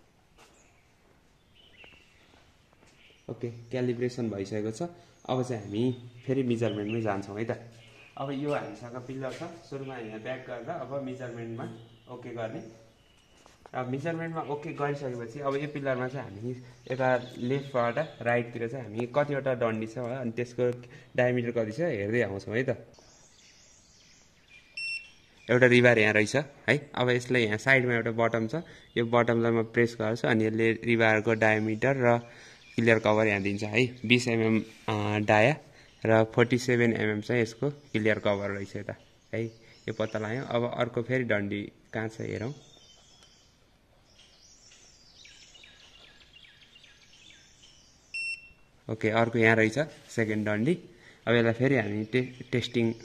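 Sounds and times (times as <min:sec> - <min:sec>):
birds chirping: 0:00.0 - 0:53.0
short electronic beep: 0:24.8 - 0:25.1, 0:48.2 - 0:48.6.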